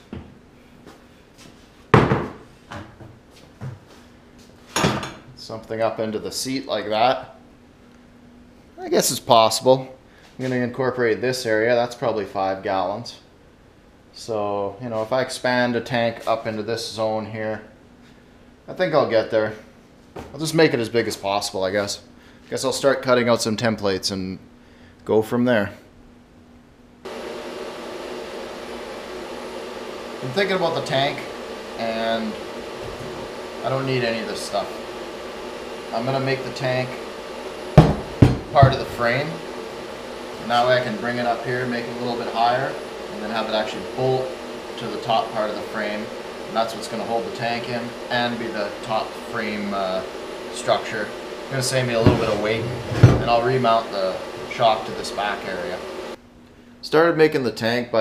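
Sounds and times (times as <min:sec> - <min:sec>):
fan rushing noise: 0:27.0 - 0:56.8
loud hollow thump: 0:37.8 - 0:39.1, 0:52.0 - 0:53.4.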